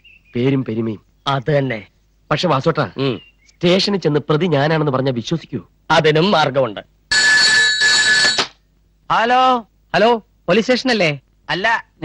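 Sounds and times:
telephone ringing: 7.1 - 8.6.

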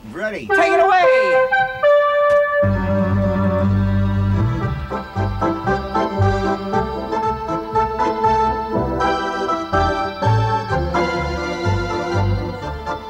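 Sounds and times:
electric organ playing polka: 0.5 - 13.0.

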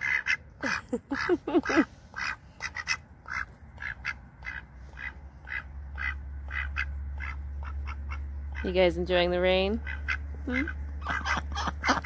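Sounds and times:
ducks quacking: 0.0 - 8.9, 9.7 - 12.0
low steady rumble: 0.0 - 12.0.

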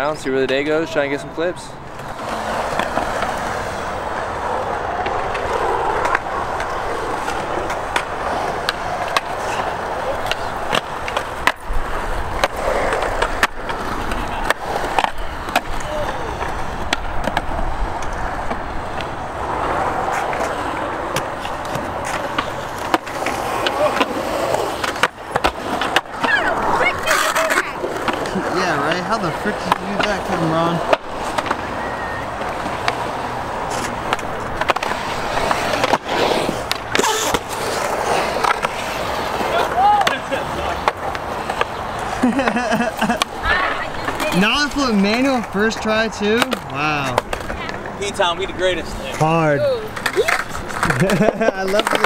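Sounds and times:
skateboard wheels rolling on concrete: 0.0 - 52.0
skateboard clacks: 1.9 - 52.0.

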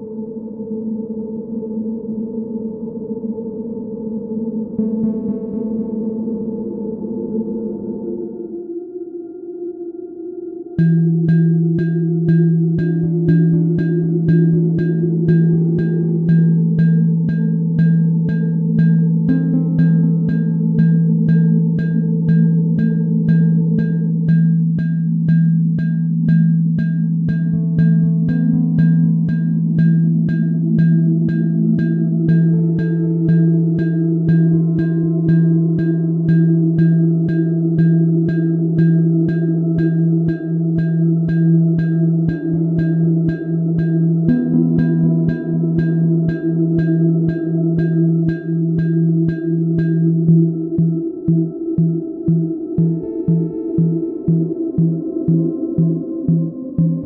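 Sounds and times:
dark synth pad notes: 0.0 - 57.0
low bass synth drone: 10.6 - 57.0.

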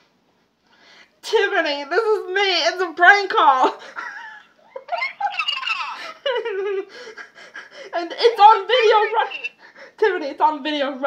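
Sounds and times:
woman laughing: 3.7 - 9.6.

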